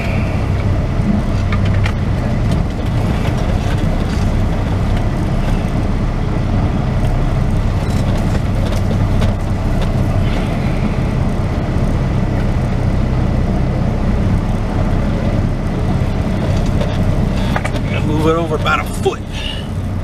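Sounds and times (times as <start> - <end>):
truck engine low drone: 0.0 - 20.0.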